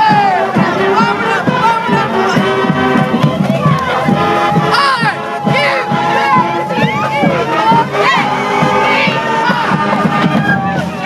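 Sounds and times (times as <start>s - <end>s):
crowd cheering and whooping: 8.8s - 11.0s.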